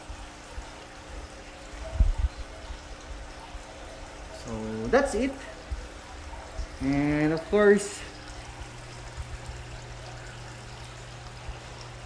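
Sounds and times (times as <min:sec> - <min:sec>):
faint steady hum: 0:00.0 - 0:12.0
water running and trickling: 0:00.0 - 0:12.0.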